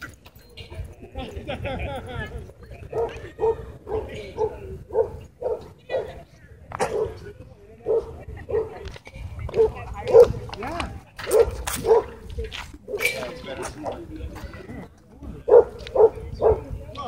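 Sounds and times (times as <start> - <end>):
dog barking: 2.9 - 6.2, 6.8 - 7.2, 7.8 - 8.8, 9.6 - 10.4, 11.3 - 12.2, 15.5 - 16.7.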